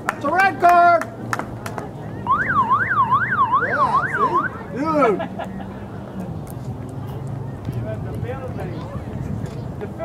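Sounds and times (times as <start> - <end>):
siren yelping: 2.0 - 5.5.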